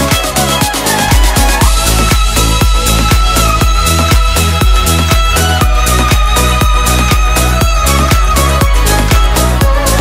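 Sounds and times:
electric violin playing: 0.0 - 10.0
electronic dance backing track: 0.0 - 10.0
steady kick drum: 0.0 - 10.0.

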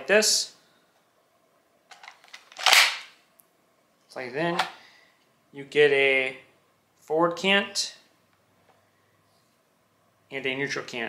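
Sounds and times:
plastic pieces locking clack: 1.9 - 3.1.

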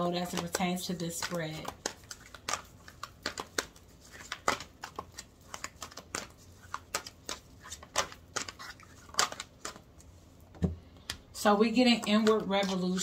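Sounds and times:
cards being shuffled: 0.2 - 10.2.

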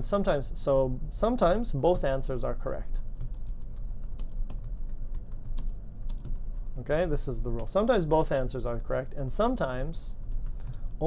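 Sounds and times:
low steady hum: 0.0 - 11.0
keyboard typing: 2.6 - 7.8, 9.6 - 11.0.

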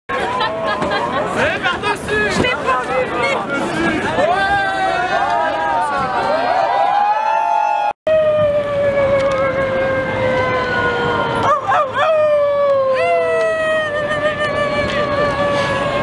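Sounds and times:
voices holding long gliding notes: 8.1 - 16.0.

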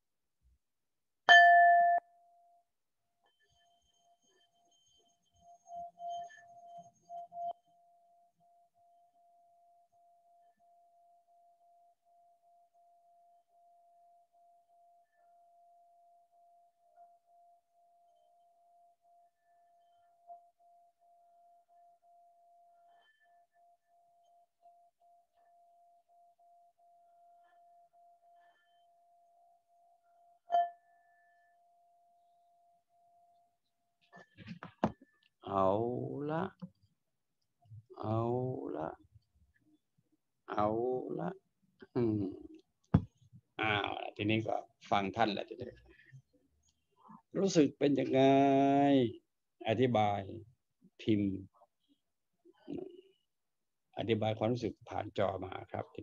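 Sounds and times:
singing bowl ringing: 1.3 - 2.5, 30.5 - 31.7.

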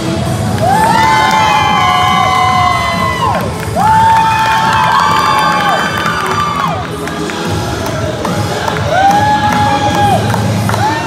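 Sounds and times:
crowd cheering: 0.6 - 11.0.

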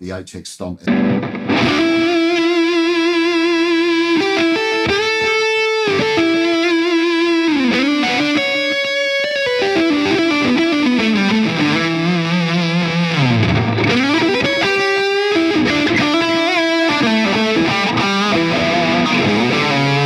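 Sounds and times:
distorted electric guitar lead: 0.8 - 20.0.

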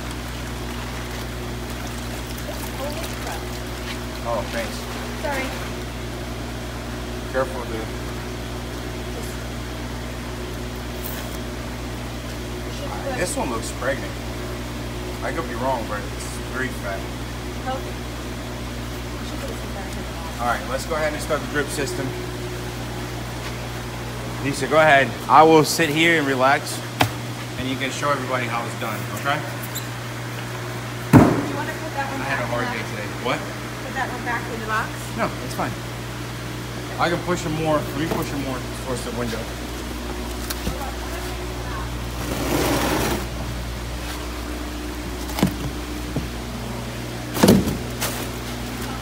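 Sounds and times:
low machine hum: 0.0 - 49.0.

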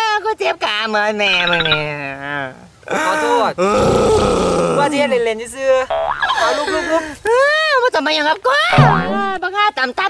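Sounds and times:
person speaking: 1.4 - 2.0, 8.7 - 9.4
person groaning: 3.6 - 4.9.

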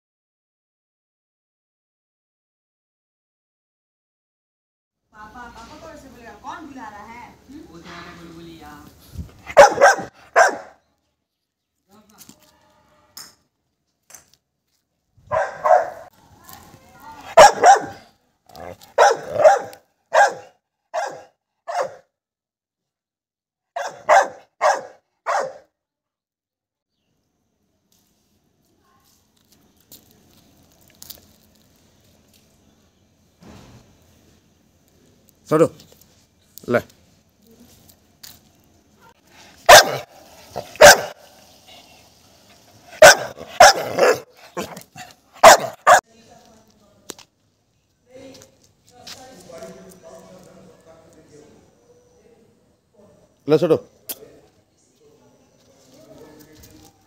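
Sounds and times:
dog barking: 9.5 - 10.8, 15.3 - 16.1, 17.3 - 22.1, 23.8 - 25.7, 39.6 - 41.3, 42.9 - 46.0.

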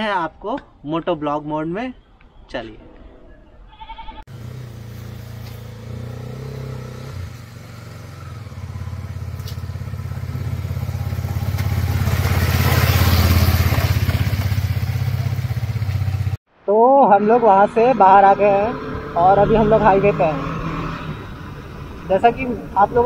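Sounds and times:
motorcycle engine at low revs: 4.3 - 16.4.

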